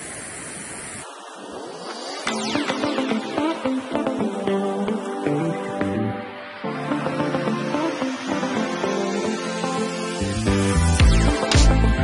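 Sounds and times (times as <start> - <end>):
river rushing over stones: 0.0 - 3.0.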